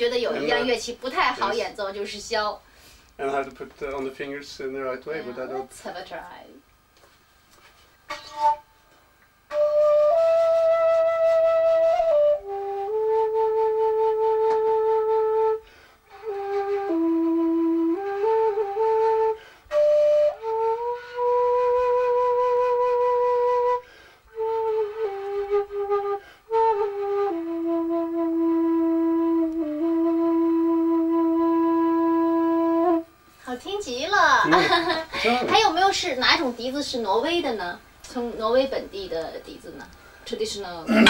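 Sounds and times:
bamboo flute low notes: 8.1 - 33.2.

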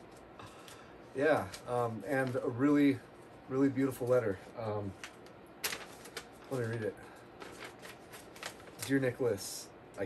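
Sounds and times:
paper rustling: 4.0 - 9.2.

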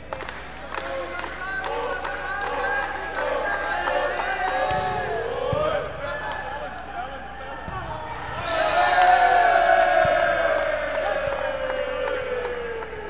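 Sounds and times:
crowd cheering: 0.0 - 13.0
people shouting: 7.2 - 13.0.

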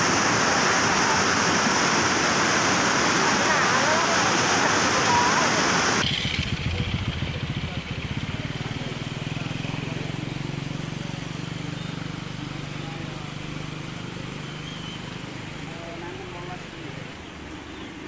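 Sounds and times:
river rushing: 0.0 - 6.1
low engine hum: 5.5 - 18.0.

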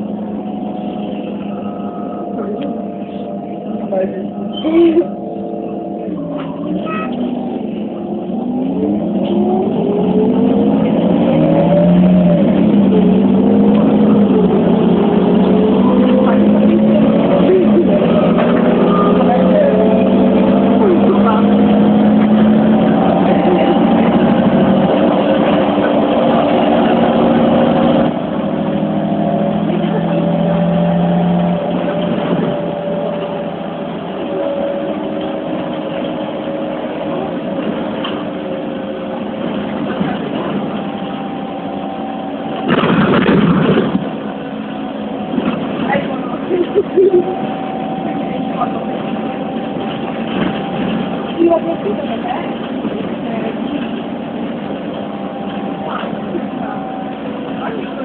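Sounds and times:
bus engine pulling hard: 0.0 - 58.0.

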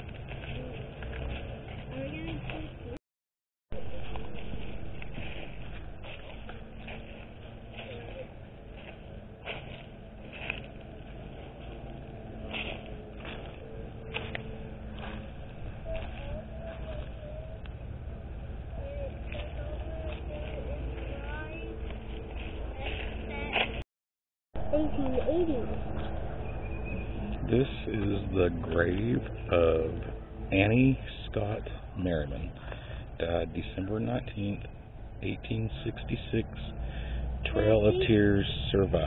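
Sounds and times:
footsteps crunching dry leaves: 0.0 - 2.8, 3.8 - 23.8.

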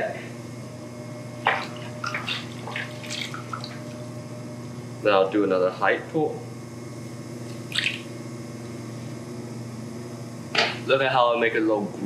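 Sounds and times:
potter's wheel humming: 0.0 - 12.0
wet clay squish: 1.5 - 3.9.

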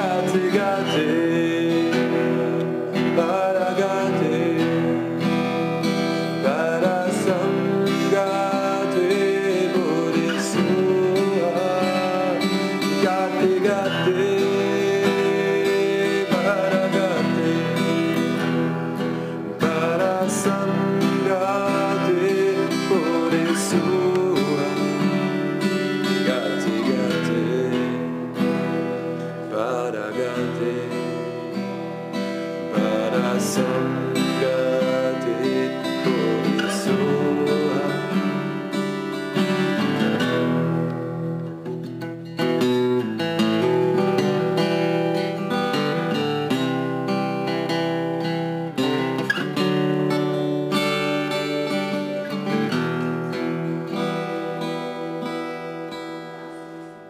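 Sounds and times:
person singing: 0.0 - 41.9, 42.5 - 57.0
strummed acoustic guitar: 0.0 - 57.0.

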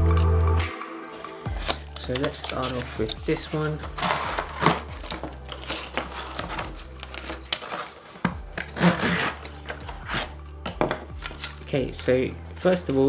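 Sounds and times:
plastic tubes rustling and scraping: 1.5 - 13.0
cardboard box flap opening: 3.9 - 10.3.

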